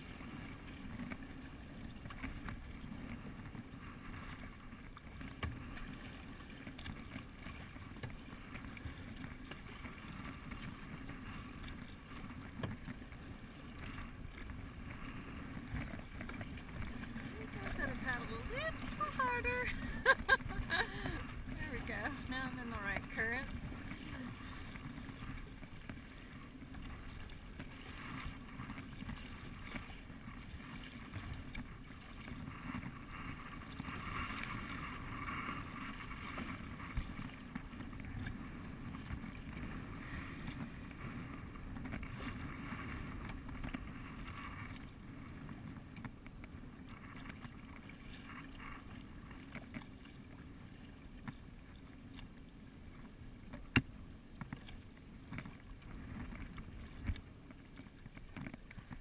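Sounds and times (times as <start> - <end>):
wind rumble on microphone: 0.0 - 51.8
water splashing against kayak hull: 0.0 - 59.0.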